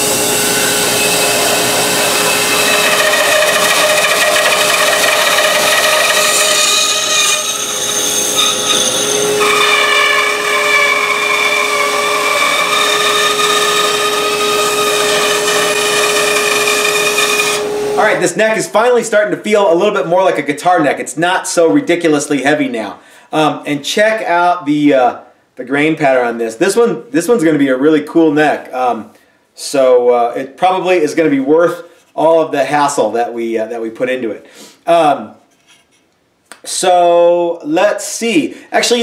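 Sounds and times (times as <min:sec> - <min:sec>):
bandsaw cutting wood: 0:00.0 - 0:18.2.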